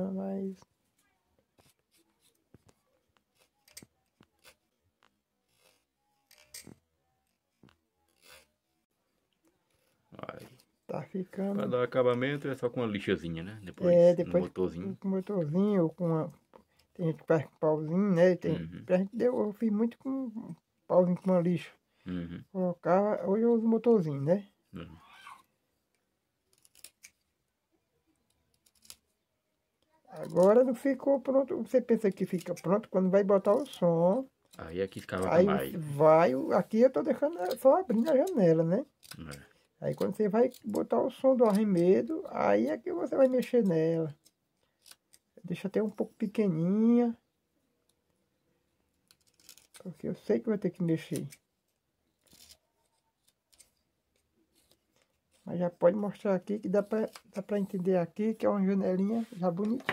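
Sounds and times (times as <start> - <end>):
knife scratching wood: 8.1 - 8.6.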